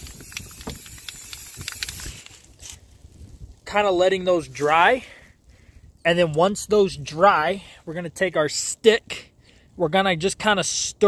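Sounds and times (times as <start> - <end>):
spray-paint can hissing: 0.0 - 2.8.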